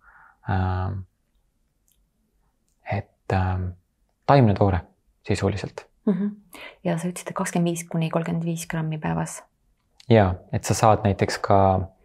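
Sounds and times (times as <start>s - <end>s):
man inhaling: 0.0s - 0.4s
man speaking a word: 0.5s - 1.0s, 10.1s - 11.9s.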